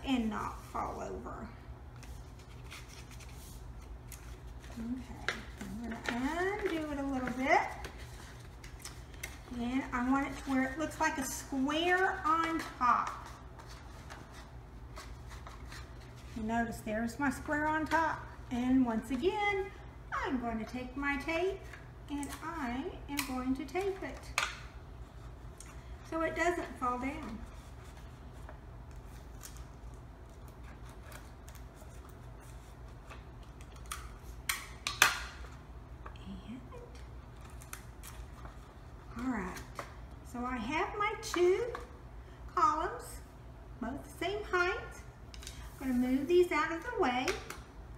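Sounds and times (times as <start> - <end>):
paper rustling and crinkling: 1.9 - 10.8.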